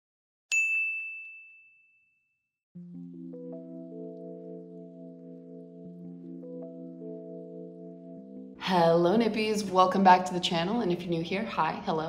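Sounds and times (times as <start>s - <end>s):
bright high chime ding: 0.5s - 2.1s
soft sustained music chords: 2.8s - 12.0s.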